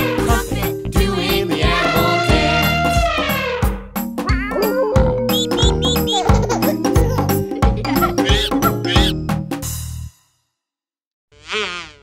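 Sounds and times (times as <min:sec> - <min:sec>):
music: 0:00.0 - 0:10.6
cartoon insect buzzing: 0:11.3 - 0:12.0.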